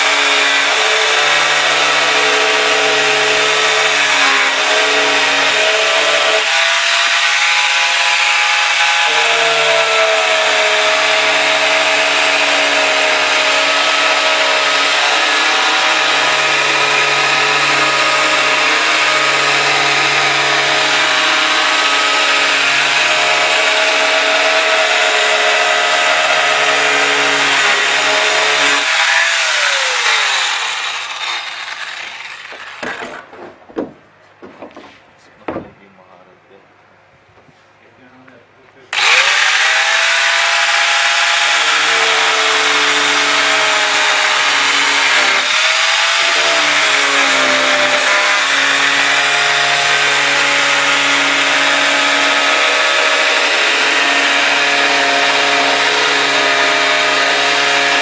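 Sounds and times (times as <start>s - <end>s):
grinder winding down: 0.0s - 33.2s, 38.9s - 58.0s
angle grinder cutting plastic: 0.0s - 33.9s, 38.9s - 58.0s.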